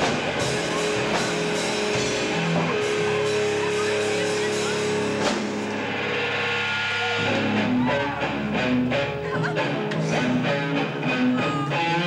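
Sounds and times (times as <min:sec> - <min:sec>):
live rock band: 0:00.0 - 0:12.0
ringing electric guitar: 0:00.0 - 0:12.0.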